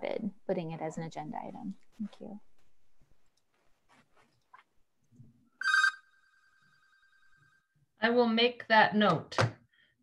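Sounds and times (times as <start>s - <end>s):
telephone ringing: 5.6s - 7.6s.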